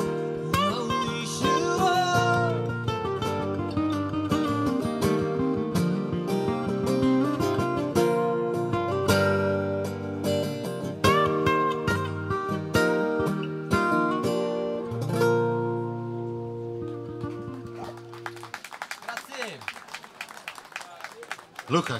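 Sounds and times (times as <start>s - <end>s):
acoustic guitars playing: 0.0s - 18.6s
scattered clapping: 16.9s - 21.9s.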